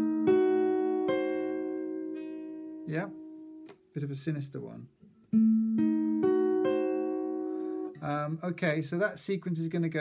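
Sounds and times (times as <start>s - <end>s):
acoustic guitar chord picked: 0.0s - 3.7s, 5.3s - 8.0s.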